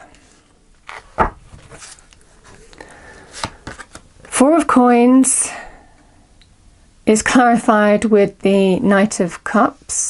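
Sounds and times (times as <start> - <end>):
card thump on table: 1.2 - 1.4
cards tapping and rustling: 3.3 - 4.1.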